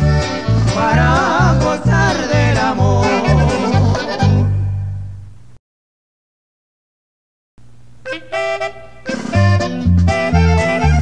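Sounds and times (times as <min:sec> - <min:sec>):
accordion runs: 0:00.0 - 0:04.9, 0:08.0 - 0:11.0
bass thumping: 0:00.0 - 0:05.6
guitar strumming: 0:00.0 - 0:05.6, 0:08.0 - 0:11.0.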